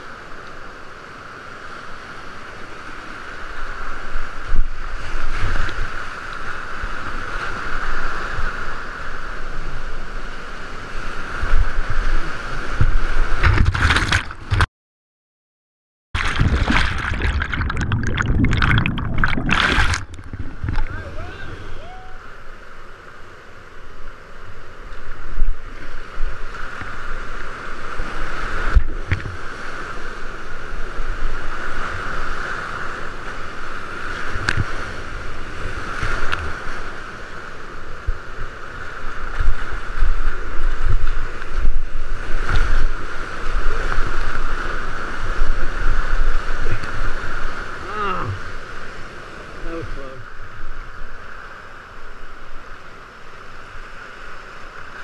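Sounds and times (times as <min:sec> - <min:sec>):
water splashing on camera: 0:12.6 - 0:14.7, 0:16.2 - 0:21.9
whitewater rapids rushing: 0:16.2 - 0:22.4.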